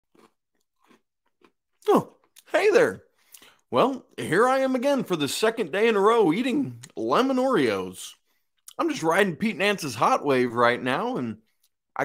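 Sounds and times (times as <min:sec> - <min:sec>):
person chewing cookie: 0:00.0 - 0:02.5.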